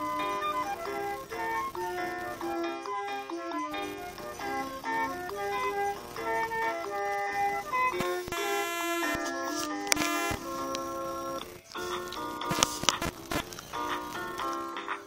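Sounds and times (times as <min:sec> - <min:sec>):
toy playing electronic tune: 0:00.0 - 0:15.0.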